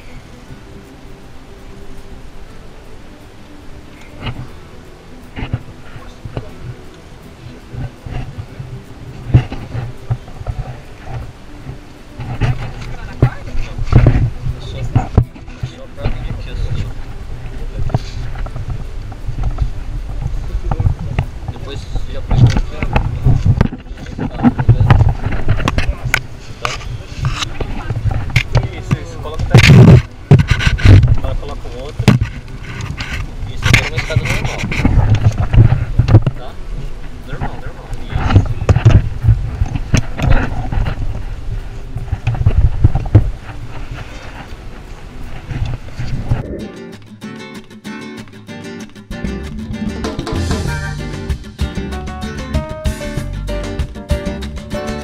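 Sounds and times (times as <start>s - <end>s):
wind rumbling on microphone: 0.0s - 47.1s.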